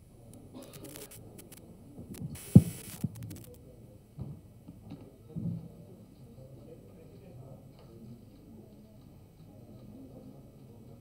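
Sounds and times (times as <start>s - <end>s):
short hiss: 2.3s - 3.5s.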